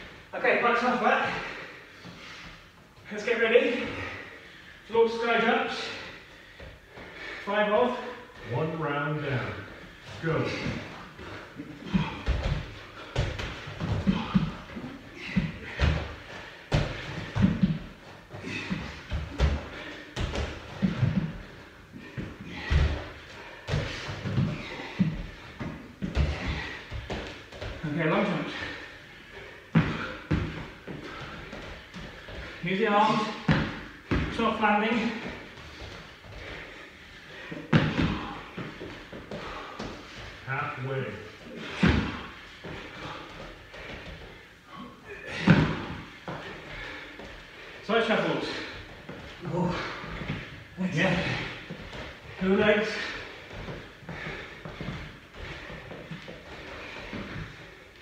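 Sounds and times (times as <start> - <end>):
feet thudding on exercise mats: 0.0 - 58.0.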